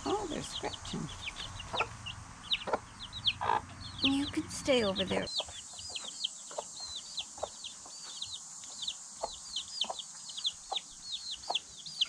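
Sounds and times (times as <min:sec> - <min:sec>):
hens clucking: 0:00.0 - 0:11.7
chicks peeping: 0:00.0 - 0:12.0.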